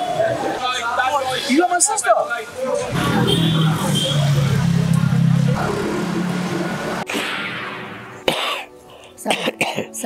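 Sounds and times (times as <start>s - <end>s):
background music: 4.5s - 10.0s
old man coughing: 8.2s - 10.0s.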